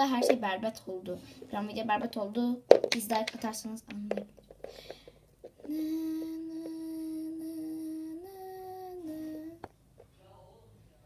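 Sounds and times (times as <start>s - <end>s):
person humming: 5.6s - 9.7s.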